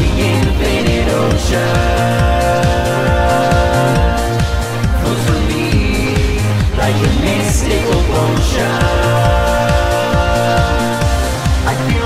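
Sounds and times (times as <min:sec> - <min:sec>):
person singing: 0:00.0 - 0:12.0
synths: 0:00.0 - 0:12.0.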